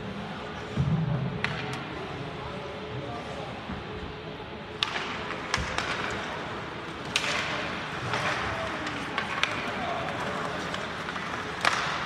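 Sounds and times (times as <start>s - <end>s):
hockey stick clacks: 1.4s - 1.9s, 4.7s - 12.0s.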